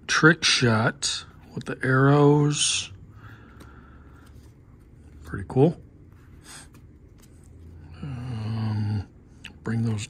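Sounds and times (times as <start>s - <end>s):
trading cards shuffled: 3.2s - 7.8s.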